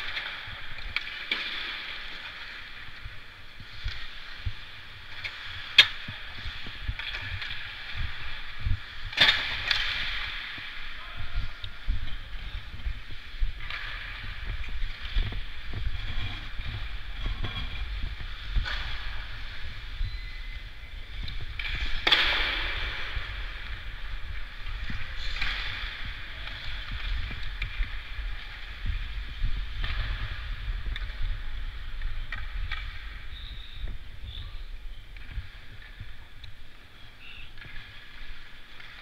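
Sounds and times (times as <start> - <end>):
skate blades scraping ice: 0.0 - 39.0.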